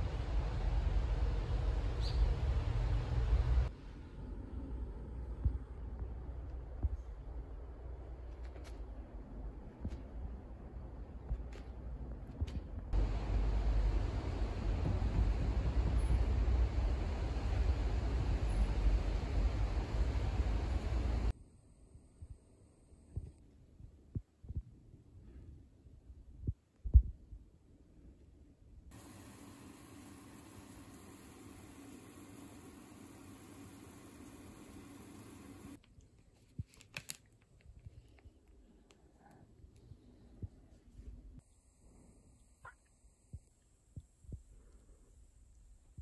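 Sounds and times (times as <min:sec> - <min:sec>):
faint steady hum: 0:00.0 - 0:26.6, 0:27.5 - 0:36.6.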